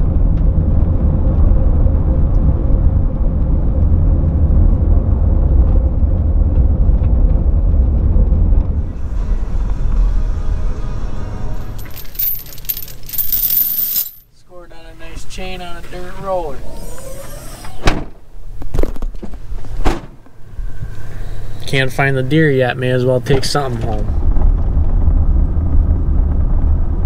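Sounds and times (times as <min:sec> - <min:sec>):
gravel rattling: 0:11.6 - 0:14.2.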